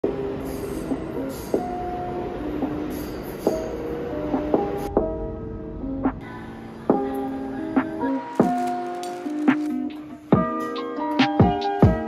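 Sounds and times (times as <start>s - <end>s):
subway train rail noise: 0.0s - 10.3s.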